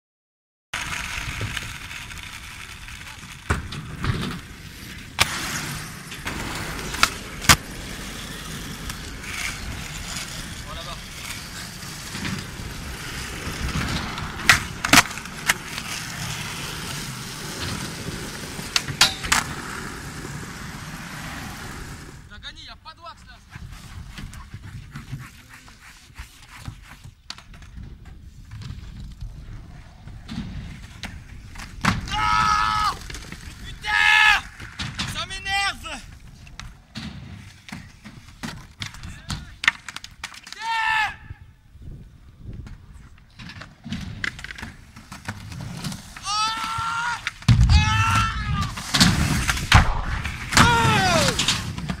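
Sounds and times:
skateboard rolling on concrete: 0:00.8 - 0:22.4, 0:23.2 - 0:52.0
people yelling: 0:32.0 - 0:33.0, 0:33.6 - 0:34.5, 0:40.5 - 0:41.3, 0:46.2 - 0:48.8, 0:50.5 - 0:51.5.

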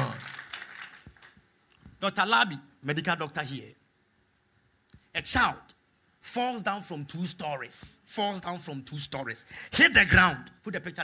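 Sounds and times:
room echo: 0:00.0 - 0:03.9
man speaking: 0:02.0 - 0:03.8, 0:05.1 - 0:11.0.

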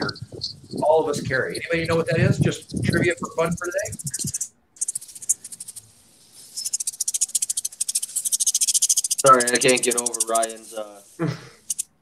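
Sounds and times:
high-pitched crackling clicks: 0:00.0 - 0:12.0.

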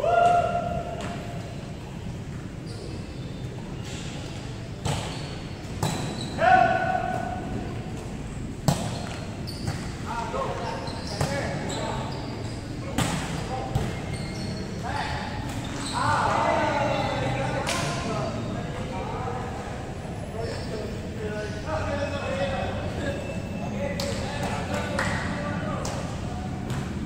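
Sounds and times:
players shouting: 0:00.0 - 0:01.0, 0:15.8 - 0:17.7.

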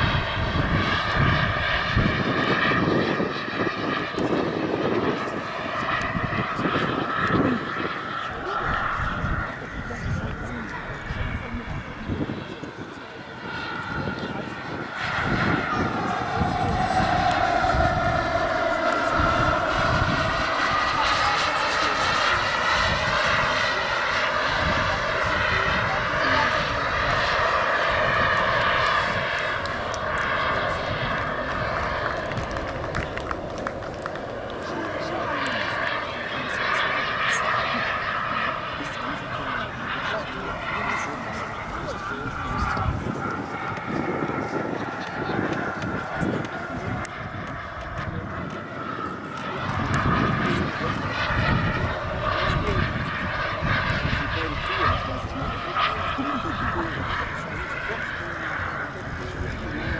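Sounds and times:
jet turbine whine: 0:00.0 - 0:59.9.

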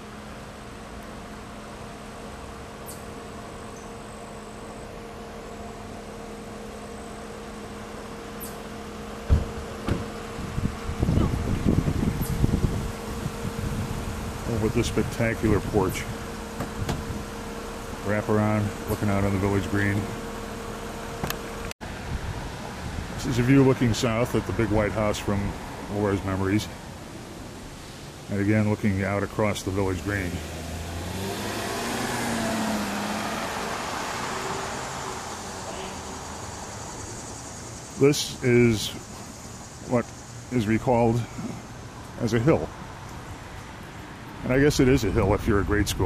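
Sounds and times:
car passing: 0:29.6 - 0:40.5.

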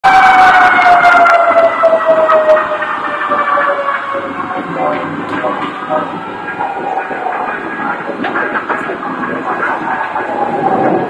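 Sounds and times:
siren sliding down in pitch: 0:00.0 - 0:11.0
street noise: 0:00.0 - 0:11.0.

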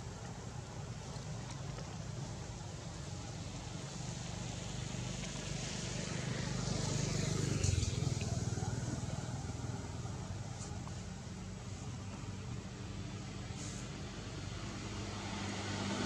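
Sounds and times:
motor vehicle passing: 0:04.4 - 0:12.0, 0:13.5 - 0:16.0.

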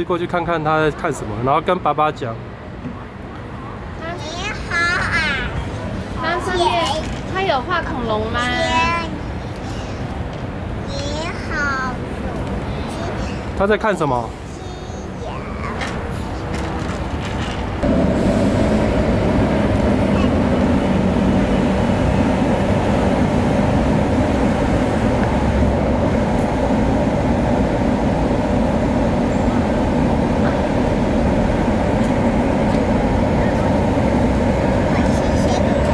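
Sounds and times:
electric blower fan droning: 0:16.6 - 0:35.9.

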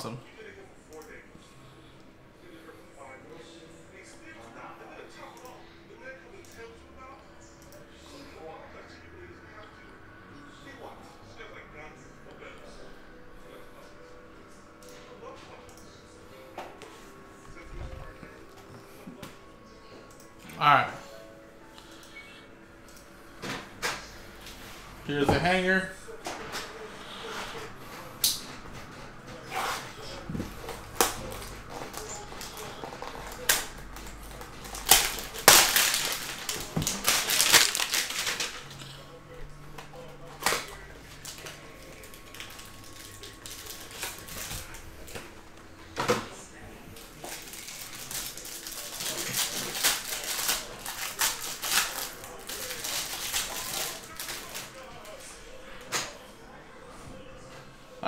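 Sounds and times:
plastic wrap crinkling: 0:30.7 - 0:38.9, 0:41.1 - 0:44.8, 0:47.0 - 0:55.2.

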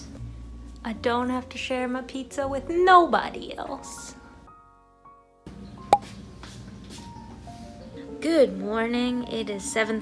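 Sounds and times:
soft music of held tones: 0:00.0 - 0:10.0.

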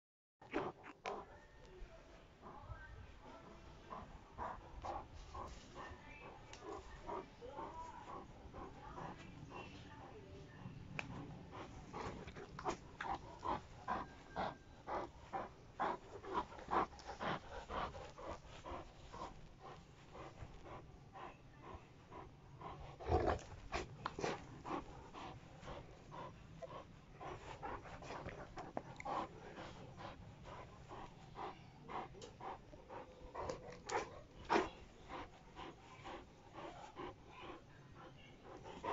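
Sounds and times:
dog panting rapidly: 0:02.4 - 0:38.9.

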